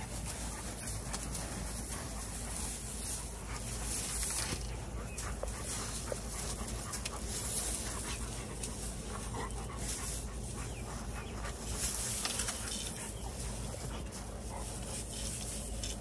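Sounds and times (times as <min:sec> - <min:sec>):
dogs grumbling and whining: 0:00.0 - 0:16.0
gravel scraping and crunching: 0:00.0 - 0:16.0.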